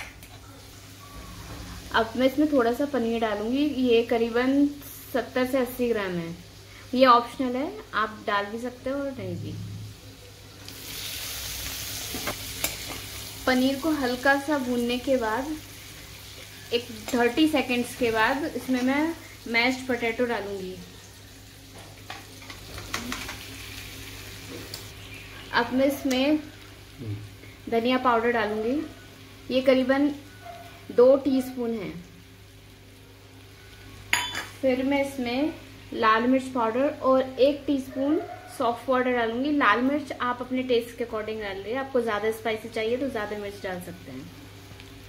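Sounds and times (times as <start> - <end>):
cheese sizzling in hot oil: 0.0 - 37.8, 38.8 - 45.0.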